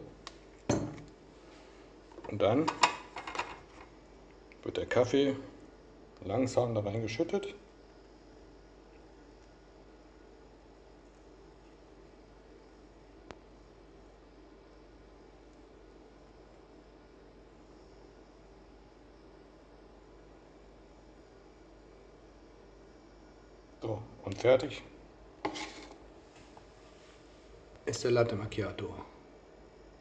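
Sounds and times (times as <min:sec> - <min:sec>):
faint room tone hiss: 0:00.0 - 0:30.0.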